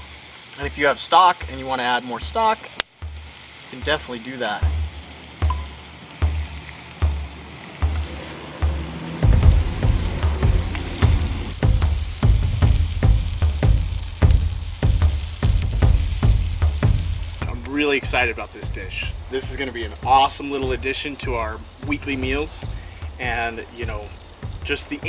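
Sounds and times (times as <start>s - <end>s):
food sizzling in a skillet: 0.0s - 25.0s
low knocks: 3.0s - 25.0s.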